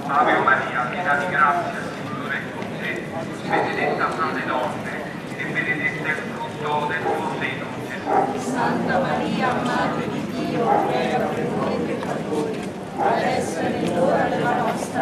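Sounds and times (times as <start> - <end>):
murmur of crowd voices: 0.0 - 15.0
footsteps on cobbles: 1.9 - 6.5.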